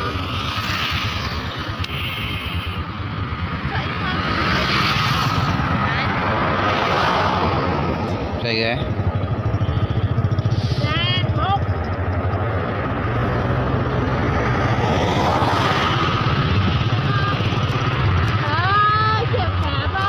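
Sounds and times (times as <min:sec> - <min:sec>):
voices calling out: 0:00.0 - 0:20.0
wind and road noise: 0:00.0 - 0:20.0
scooter engine running: 0:07.4 - 0:20.0.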